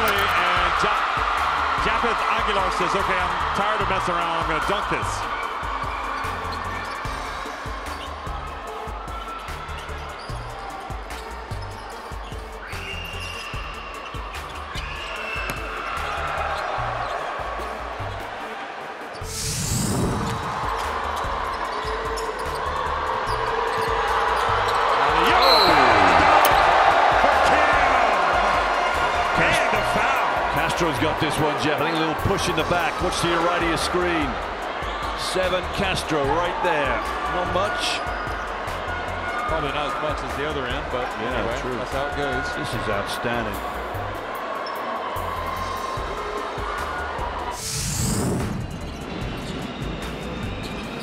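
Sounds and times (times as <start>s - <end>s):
arena crowd noise: 0.0s - 51.0s
whoosh: 19.3s - 20.8s
music with bass beat: 19.3s - 24.9s.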